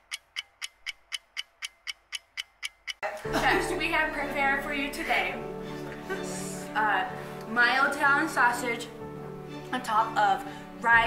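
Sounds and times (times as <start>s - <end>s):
clock ticking: 0.0s - 3.0s.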